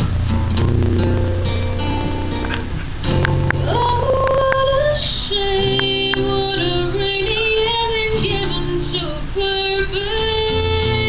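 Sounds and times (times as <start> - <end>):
acoustic guitar strumming: 0.0 - 11.0
woman singing into microphone: 3.6 - 11.0.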